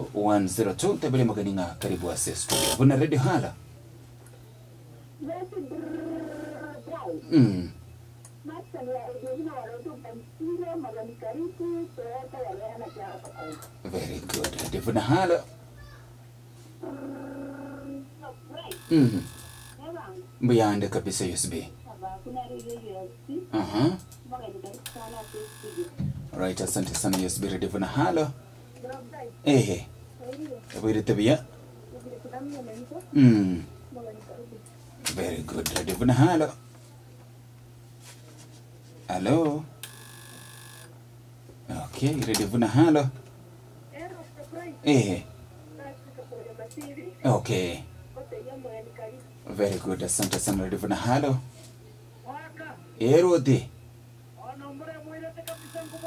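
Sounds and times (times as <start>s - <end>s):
low electrical hum: 0.0s - 56.0s.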